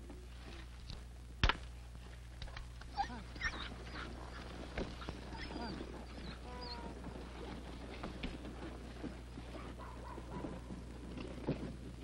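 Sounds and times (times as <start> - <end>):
steady low hum: 0.0 - 12.0
dogs yelping and whining: 2.9 - 6.9.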